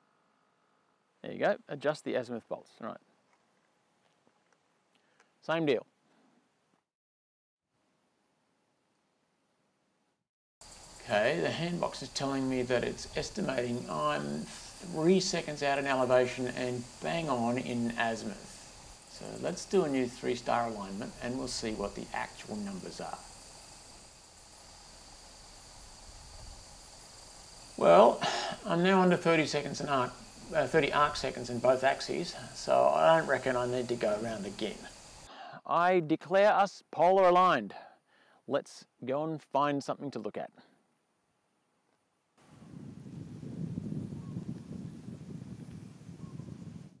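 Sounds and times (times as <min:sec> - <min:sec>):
crickets trilling: 0:10.6 - 0:35.4, 0:42.5 - 0:46.9
wind buffeting microphone: 0:42.5 - 0:47.0.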